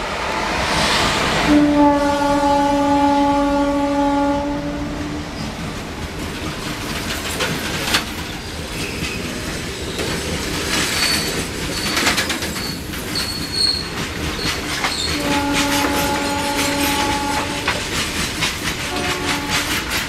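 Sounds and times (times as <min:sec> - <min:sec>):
locomotive horn: 0:01.4 - 0:05.4, 0:15.1 - 0:17.9, 0:18.8 - 0:20.0
train wheels clattering over rails: 0:05.3 - 0:20.0
high-pitched wheel squeals: 0:10.9 - 0:17.5.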